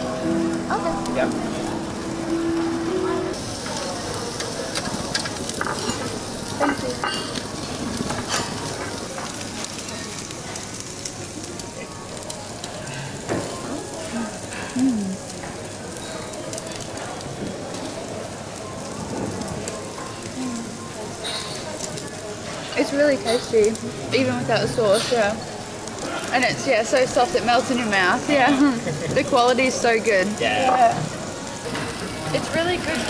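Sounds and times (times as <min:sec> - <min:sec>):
meat sizzling on a grill: 0:00.0 - 0:33.0.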